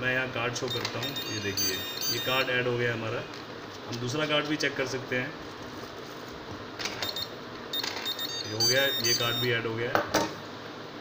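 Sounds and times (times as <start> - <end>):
card reader beep: 0.7 - 2.5, 6.9 - 9.6.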